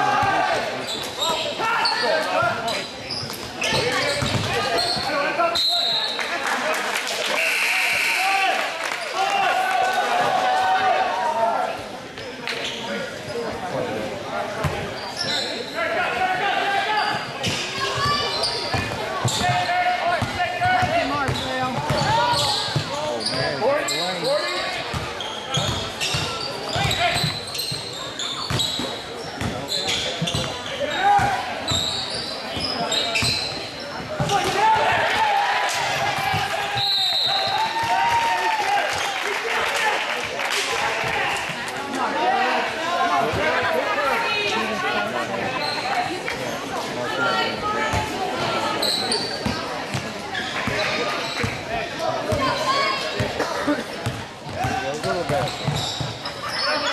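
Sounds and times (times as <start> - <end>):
crowd and players shouting: 0.0 - 11.9, 13.3 - 28.8, 29.4 - 56.9
basketball bouncing on hardwood: 4.2 - 4.5.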